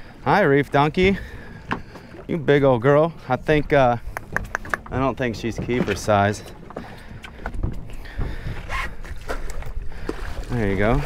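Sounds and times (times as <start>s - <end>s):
wind and waves rumble: 0.0s - 11.0s
water splashing: 0.9s - 11.0s.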